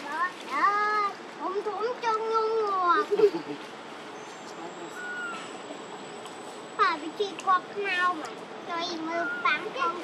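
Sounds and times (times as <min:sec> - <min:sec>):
baby macaque high-pitched call: 0:04.9 - 0:05.7, 0:09.0 - 0:09.8.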